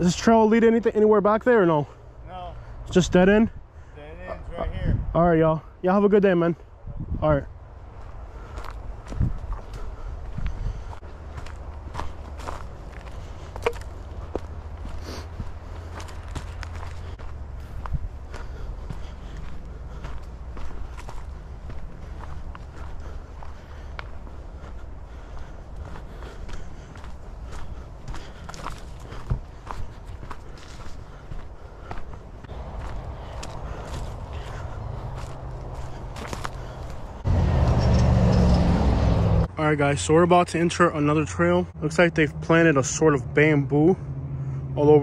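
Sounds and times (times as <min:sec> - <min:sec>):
footsteps crunching leaves and twigs: 0:07.9 - 0:37.3.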